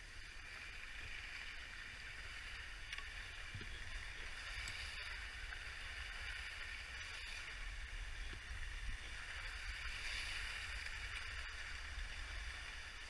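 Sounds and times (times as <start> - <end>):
skis sliding over snow: 0.0 - 13.0
wind rumbling on microphone: 0.0 - 13.0.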